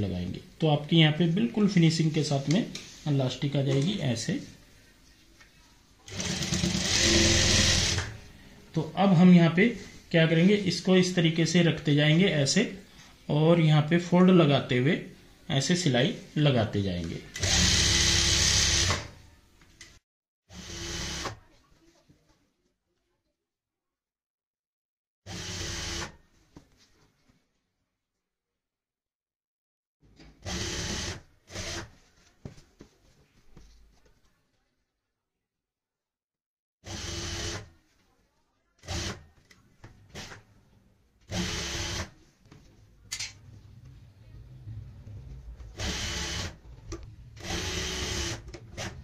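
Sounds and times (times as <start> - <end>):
sewing machine stitching: 6.1 - 8.2, 17.4 - 19.1, 38.8 - 39.2, 45.4 - 46.6, 47.3 - 49.0.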